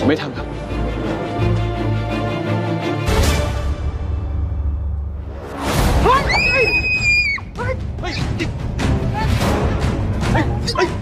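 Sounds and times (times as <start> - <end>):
high-pitched scream: 6.3 - 7.4.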